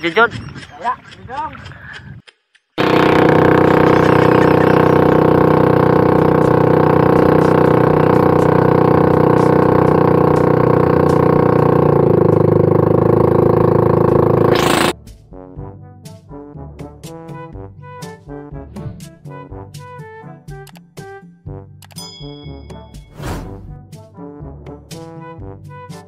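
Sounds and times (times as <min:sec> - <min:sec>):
motorboat engine running: 0:02.8 - 0:15.0.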